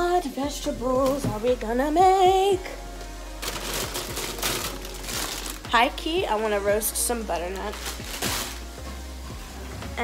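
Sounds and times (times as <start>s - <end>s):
vegetables and packaging rustling: 3.4s - 8.8s.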